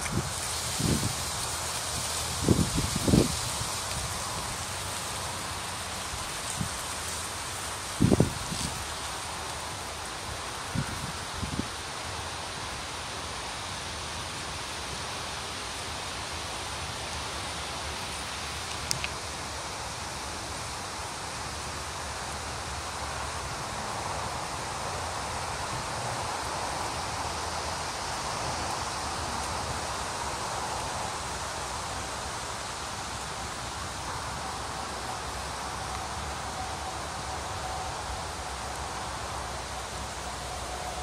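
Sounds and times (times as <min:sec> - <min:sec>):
wind rustling bamboo leaves: 0:00.0 - 0:41.0.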